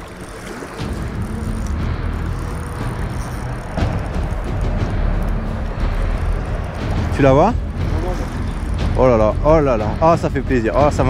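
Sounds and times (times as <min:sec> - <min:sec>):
heavy low rumble: 0:00.0 - 0:11.0.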